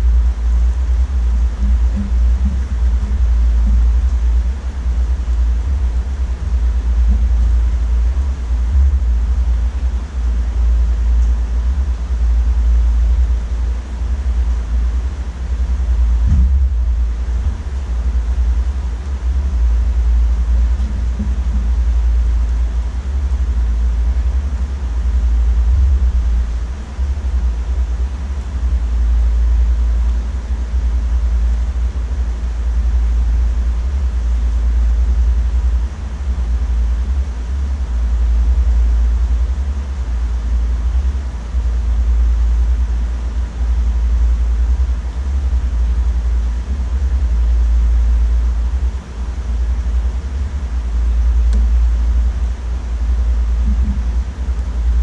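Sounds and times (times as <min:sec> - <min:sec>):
deep rumble: 0:00.0 - 0:55.0.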